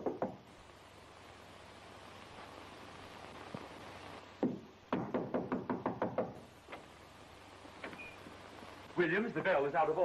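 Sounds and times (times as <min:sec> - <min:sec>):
fist knocking on a door: 0:04.4 - 0:06.4.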